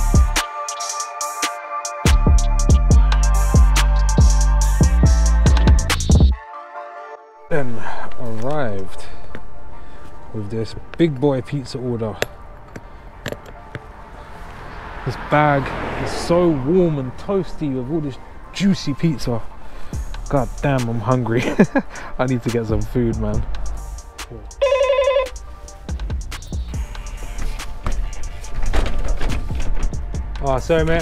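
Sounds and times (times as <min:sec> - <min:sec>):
intercom warbling trill: 0:24.6 - 0:25.4.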